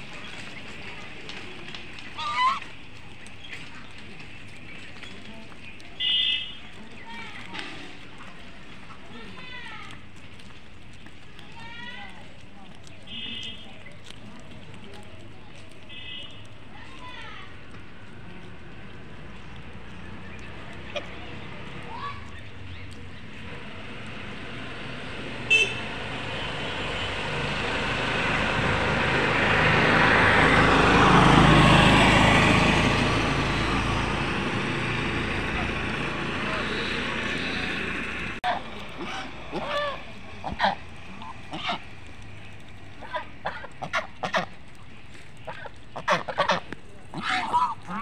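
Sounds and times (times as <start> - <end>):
vehicle passing: 0.0 - 48.0
geese honking: 2.0 - 3.7, 6.0 - 6.6, 20.4 - 21.2, 32.9 - 42.2, 42.8 - 44.7, 45.4 - 48.0.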